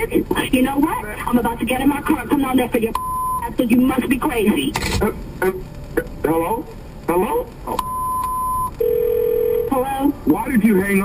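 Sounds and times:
lower telephone tone: 0:03.0 - 0:03.4, 0:07.8 - 0:09.8
higher telephone beep: 0:03.0 - 0:03.5, 0:07.8 - 0:09.7.

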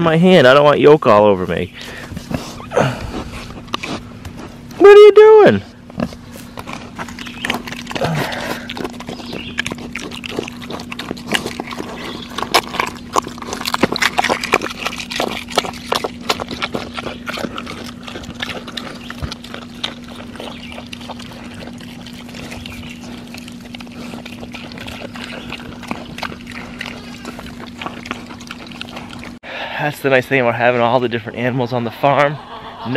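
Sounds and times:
piglets rooting and chewing: 0:00.0 - 0:32.3.

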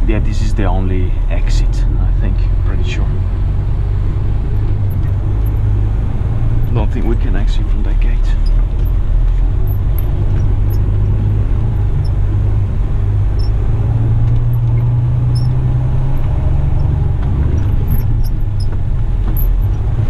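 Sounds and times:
diesel truck engine droning: 0:00.0 - 0:20.0.

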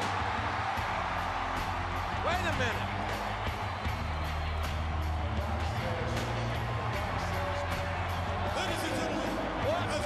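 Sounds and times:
dense crowd noise: 0:00.0 - 0:10.0
loud music with bass line: 0:00.0 - 0:10.0.

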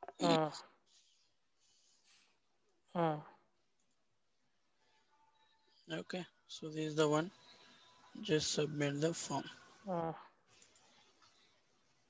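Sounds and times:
person saying uh: 0:00.0 - 0:00.6.

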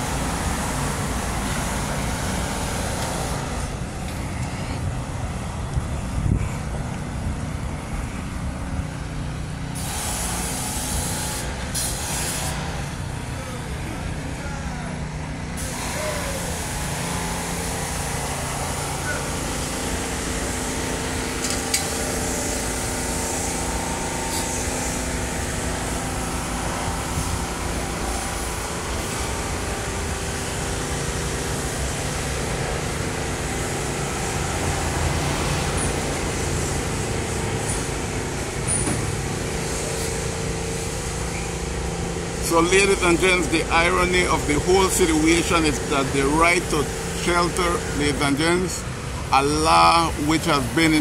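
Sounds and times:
city street traffic: 0:00.0 - 0:51.0.

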